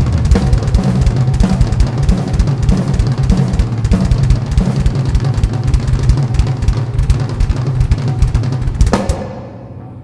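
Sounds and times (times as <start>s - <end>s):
fast kick drum strokes: 0.0s - 10.0s
snare drum hits: 0.0s - 10.0s.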